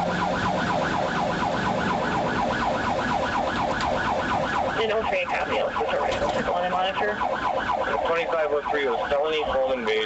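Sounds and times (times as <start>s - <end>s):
police siren yelping: 0.0s - 10.0s.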